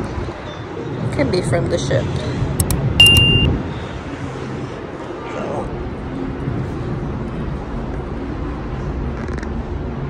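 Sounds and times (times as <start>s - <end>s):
low outdoor city rumble: 0.0s - 10.0s.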